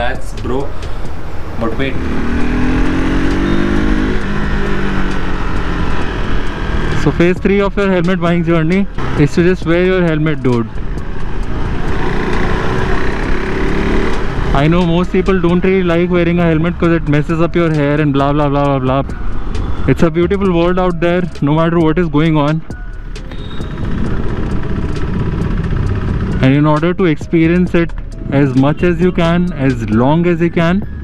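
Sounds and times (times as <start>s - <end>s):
motorcycle engine cruising: 0.0s - 31.0s
road and wind noise: 0.0s - 31.0s
rumble of traffic: 0.0s - 31.0s.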